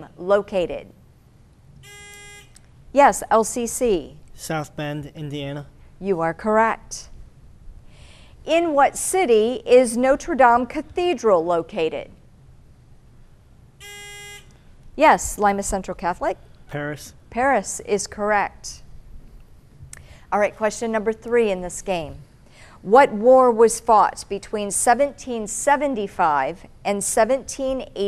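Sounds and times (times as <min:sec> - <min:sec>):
electronic buzzer: 0:01.8 - 0:02.6, 0:13.8 - 0:14.6.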